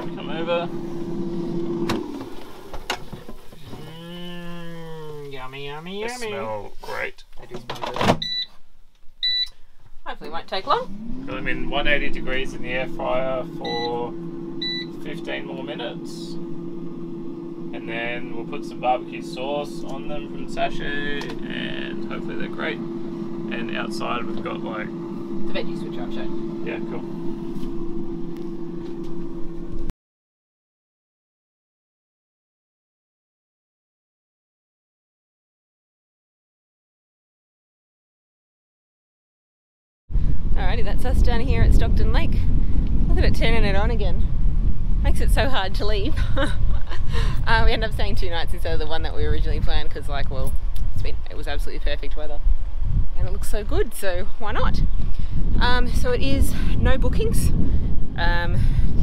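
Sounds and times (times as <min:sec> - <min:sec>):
air fryer fan humming: 0:00.0 - 0:06.6, 0:09.2 - 0:09.5, 0:10.9 - 0:29.9, 0:40.6 - 0:52.3
person saying mmm: 0:03.7 - 0:05.3.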